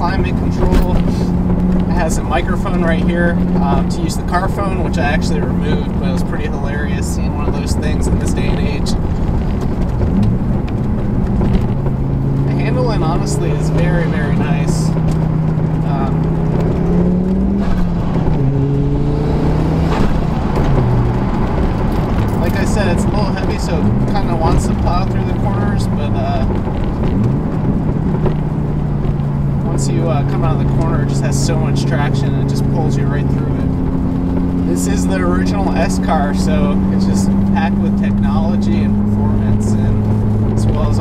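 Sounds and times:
car engine accelerating through gears: 0.0s - 41.0s.

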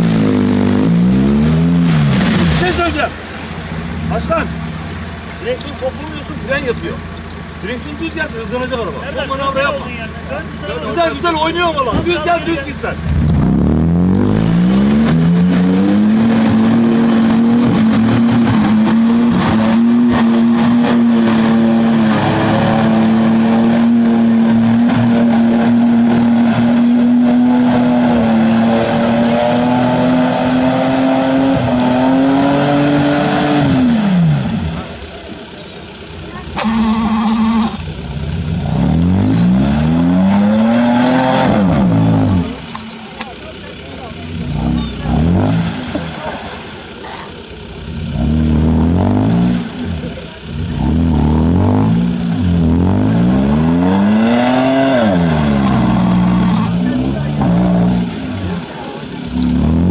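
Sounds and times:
engine revving: 0.0s - 59.9s.

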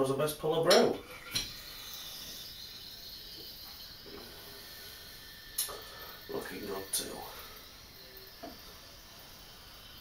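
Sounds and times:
beer pouring into glass: 0.4s - 10.0s.

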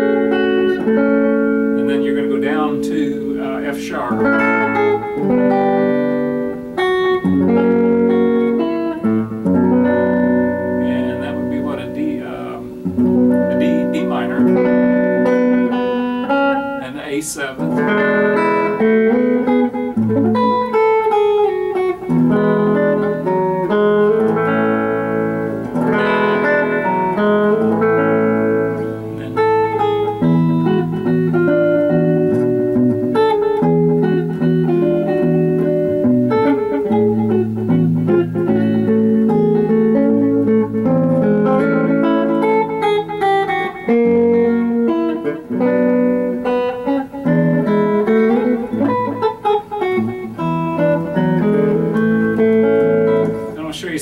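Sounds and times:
fingerpicked electric guitar: 0.0s - 54.0s.

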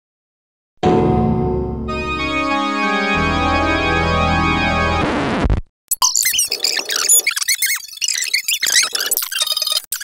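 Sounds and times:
high-pitched squeaks and chirps: 5.9s - 10.0s.

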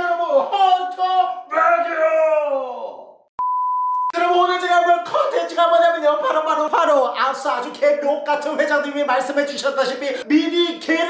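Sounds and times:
electronic bleep: 3.4s - 4.2s.

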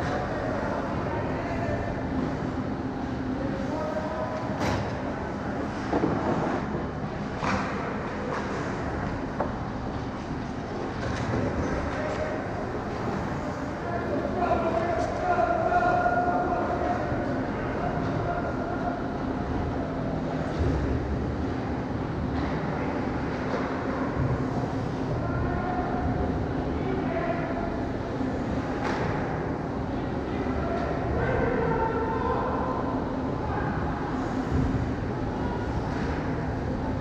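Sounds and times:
arena noise: 0.0s - 37.0s.

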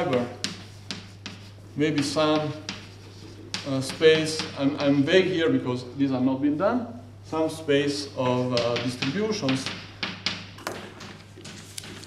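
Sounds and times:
chalk tapping on blackboard: 0.0s - 5.1s, 8.2s - 12.0s.

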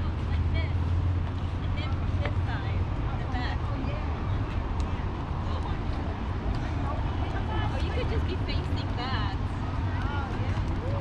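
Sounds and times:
passersby's voices: 0.0s - 11.0s
road traffic rumble: 0.0s - 11.0s.

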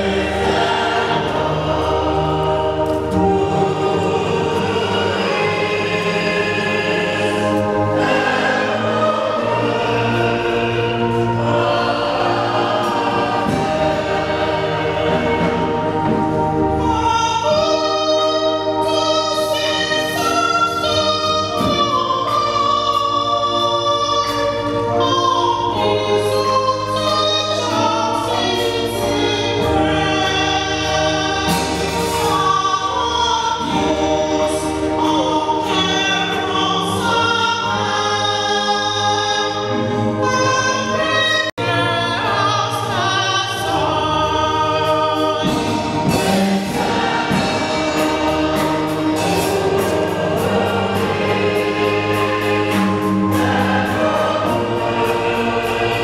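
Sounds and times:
choir singing a hymn: 0.0s - 56.0s.

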